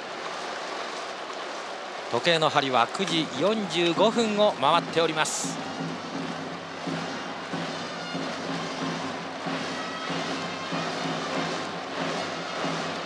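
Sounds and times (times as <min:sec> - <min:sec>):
stadium crowd din: 0:00.0 - 0:13.0
cheering-section music: 0:03.2 - 0:13.0.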